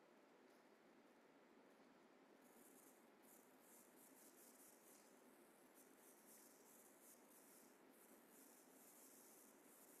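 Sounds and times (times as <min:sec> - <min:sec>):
faint high-pitched rustles: 0:01.8 - 0:10.0.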